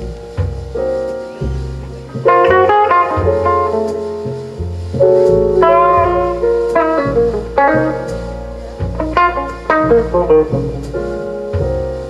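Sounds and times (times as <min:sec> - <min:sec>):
electric guitar melody: 0:00.0 - 0:12.0
jazz band playing: 0:00.0 - 0:12.0.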